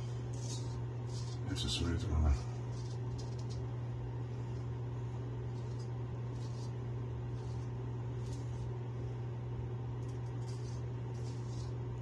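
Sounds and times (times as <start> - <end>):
straight razor scraping stubble: 0.0 - 2.0, 2.6 - 3.8, 5.4 - 8.8, 10.0 - 12.0
steady low hum: 0.0 - 12.0.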